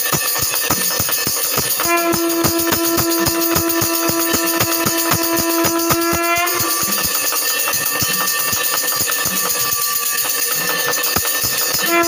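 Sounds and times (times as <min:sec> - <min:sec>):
fast drum beats: 0:00.0 - 0:09.6, 0:11.1 - 0:11.9
jangling metal bells and cymbals: 0:00.0 - 0:12.0
conch shell held note: 0:01.8 - 0:07.1, 0:11.8 - 0:12.0.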